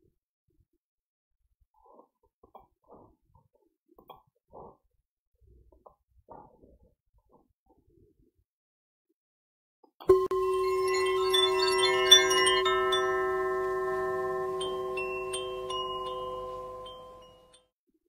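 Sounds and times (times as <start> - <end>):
chimes ringing: 10.1 - 17.6.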